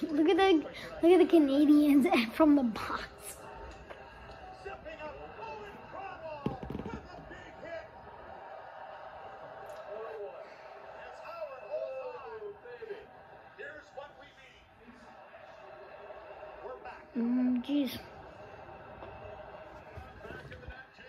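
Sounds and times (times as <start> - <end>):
sports commentary on tv: 0.0 - 21.0
burst of knocks: 6.4 - 7.3.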